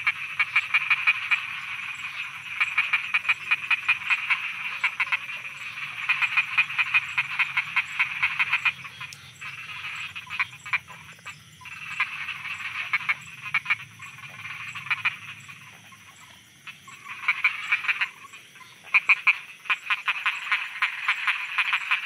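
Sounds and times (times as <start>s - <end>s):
frogs croaking: 0.0s - 22.0s.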